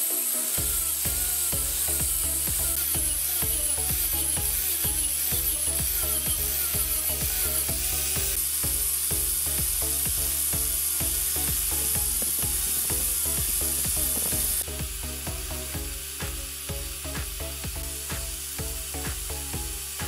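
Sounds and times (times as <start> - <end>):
wire brush grinder on steel: 0.0 - 16.8
music with fast beat: 0.2 - 20.0.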